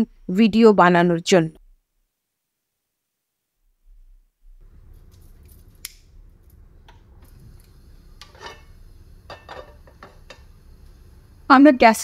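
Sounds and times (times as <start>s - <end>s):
low steady hum: 1.6s - 12.0s.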